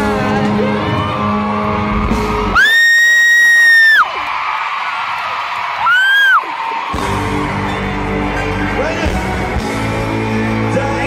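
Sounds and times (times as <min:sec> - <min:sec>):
live concert music: 0:00.0 - 0:11.0.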